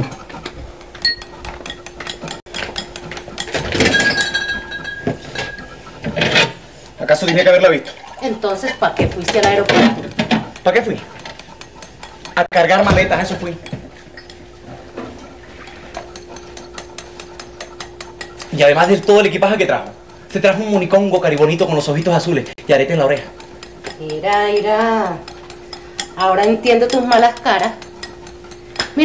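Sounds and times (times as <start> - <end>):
glass item ringing: 1.0 - 1.3, 3.8 - 5.6
glass containers clinking: 1.0 - 6.6.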